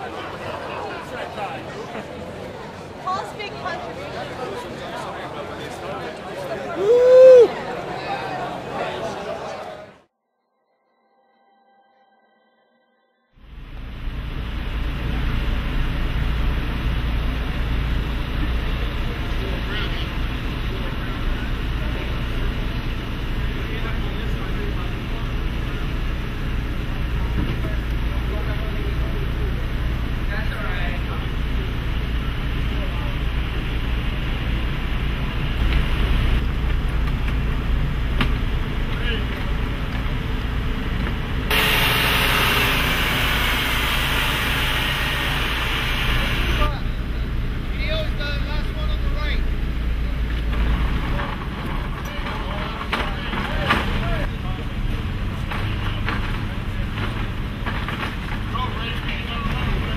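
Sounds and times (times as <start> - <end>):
diesel truck engine rumbling: 13.4 - 59.9
loud air hiss: 41.5 - 47.1.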